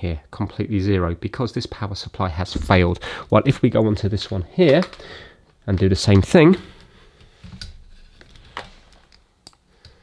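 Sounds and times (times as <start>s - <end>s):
plastic clicks from handling cables: 4.7s - 5.9s, 7.4s - 10.0s.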